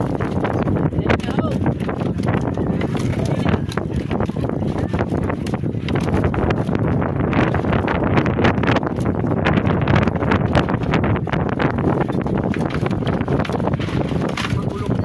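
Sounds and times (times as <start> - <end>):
fish flapping against plastic crate: 0.0 - 15.0
wind buffeting microphone: 0.0 - 15.0.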